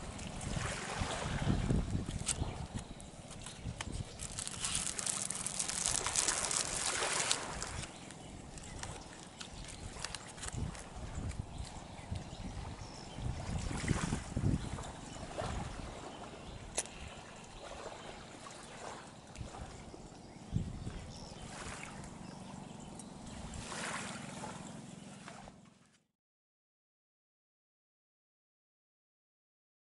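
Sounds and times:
small waves lapping on shore: 0.0s - 25.8s.

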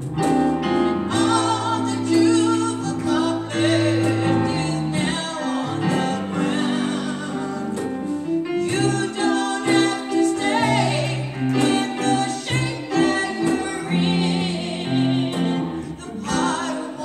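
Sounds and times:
bass and instrumental accompaniment: 0.0s - 17.0s
gospel vocal group singing: 0.9s - 17.0s.

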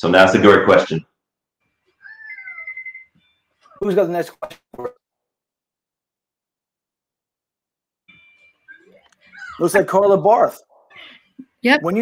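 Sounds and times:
cat meowing: 2.0s - 3.2s.

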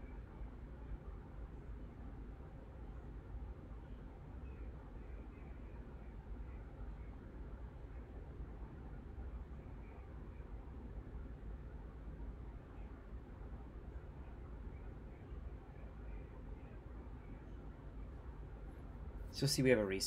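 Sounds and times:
microphone hiss: 0.0s - 20.0s.

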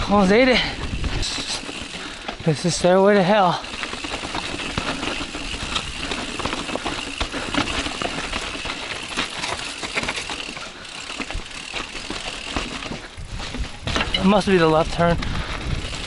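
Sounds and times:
bike drivetrain clicking: 0.0s - 16.0s
mountain bike rattling over rocks: 0.0s - 16.0s.

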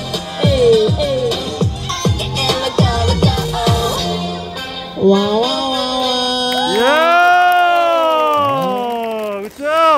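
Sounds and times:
voices whooping together: 6.0s - 9.3s.

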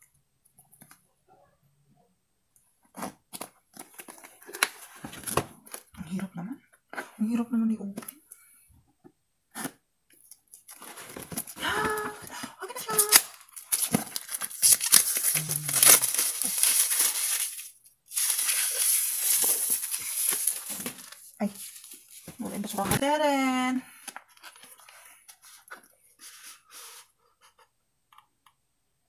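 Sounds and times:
plastic shrink-wrap crinkling: 10.3s - 23.0s.

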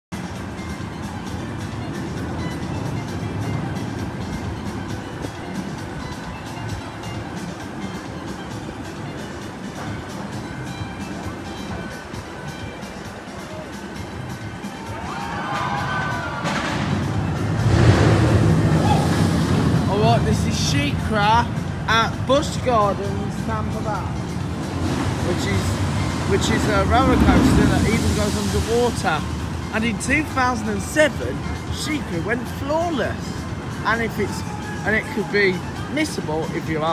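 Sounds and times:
background music: 0.1s - 36.9s
rushing noise: 0.2s - 35.0s
distant voices: 0.5s - 36.9s
steady low rumble: 16.4s - 32.5s.

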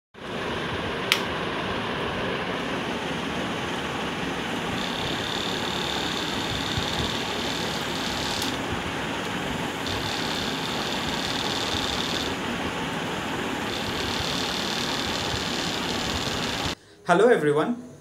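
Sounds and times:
thin high whine: 2.6s - 16.8s
small electric motor whirring: 4.7s - 8.6s, 9.8s - 12.4s, 13.6s - 16.8s.

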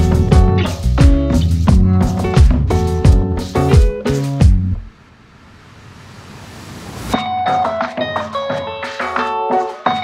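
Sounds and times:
soft rushing noise: 4.8s - 7.2s.

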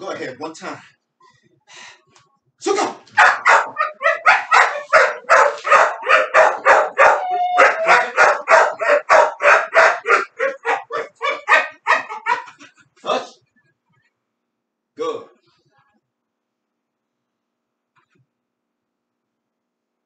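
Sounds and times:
dog barking rapidly: 3.1s - 12.6s
dog whining: 3.2s - 12.6s.

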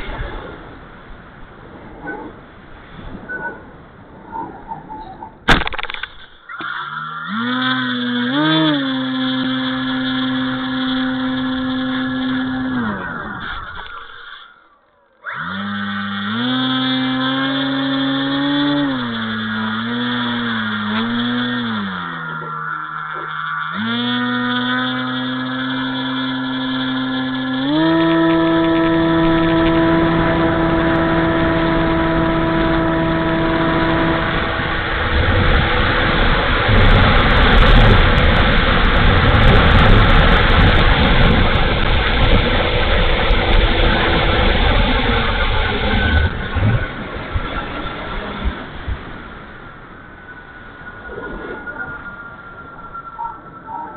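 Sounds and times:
model plane motor whining: 5.6s - 14.6s, 15.2s - 49.0s
floats rumbling over snow: 27.8s - 50.1s.

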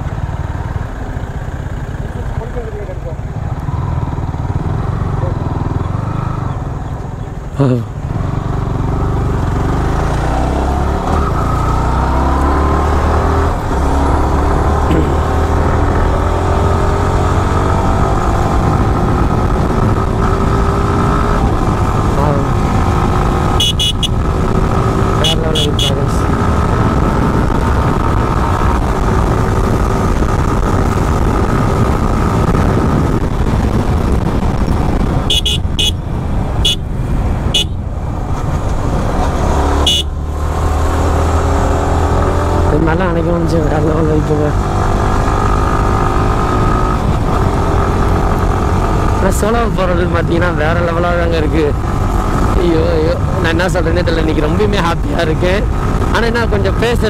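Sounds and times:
motorcycle engine accelerating: 0.0s - 57.0s
wind rumble on microphone: 12.9s - 57.0s
short horn beeps: 23.6s - 24.2s, 35.3s - 36.0s, 37.6s - 37.8s, 39.9s - 40.1s.

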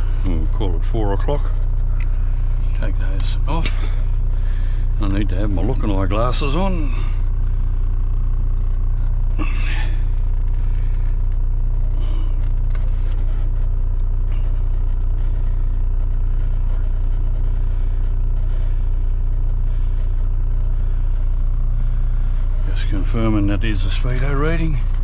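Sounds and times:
diesel truck engine idling: 0.0s - 25.0s.

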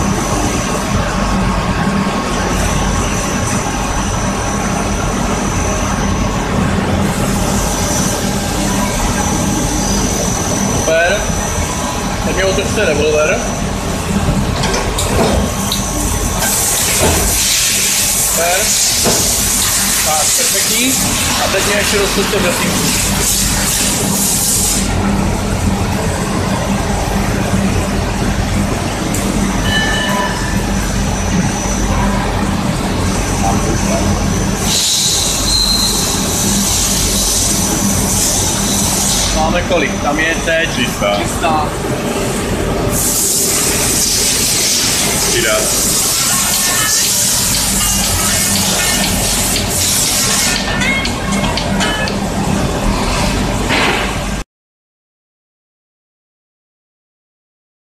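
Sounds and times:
lathe running: 0.0s - 52.9s
loud spraying hiss: 16.5s - 24.9s, 42.9s - 50.6s.

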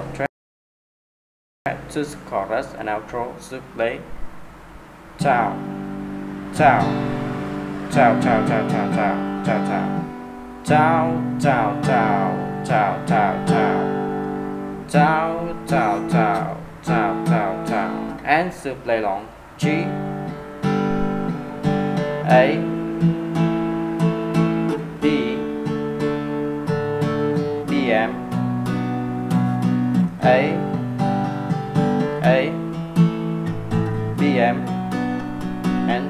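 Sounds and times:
acoustic guitar strumming: 4.0s - 36.0s.

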